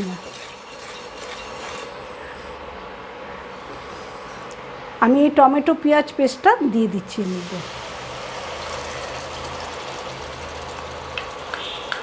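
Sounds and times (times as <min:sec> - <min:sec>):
low hum and hiss: 0:02.0 - 0:12.0.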